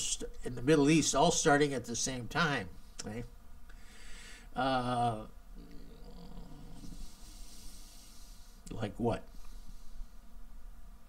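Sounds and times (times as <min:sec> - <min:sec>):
faint steady hiss: 0:00.0 - 0:11.0
man humming uhh: 0:04.6 - 0:07.4.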